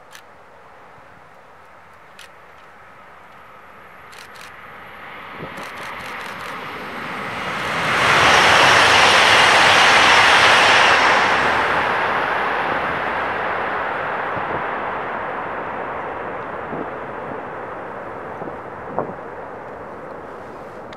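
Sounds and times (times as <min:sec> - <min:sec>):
train passing: 0:02.1 - 0:20.9.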